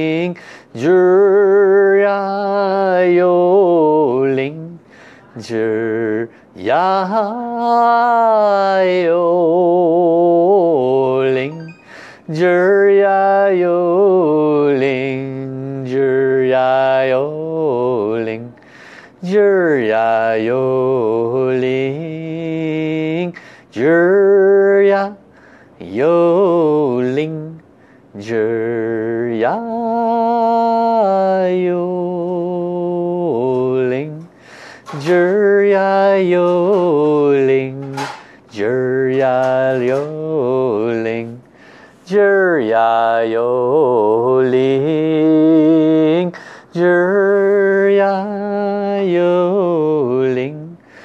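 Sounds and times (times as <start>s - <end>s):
man chanting: 0.0s - 18.6s.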